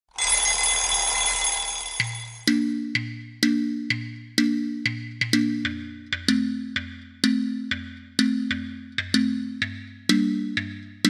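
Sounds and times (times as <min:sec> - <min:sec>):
alarm clock bell ringing: 0:00.1 - 0:02.7.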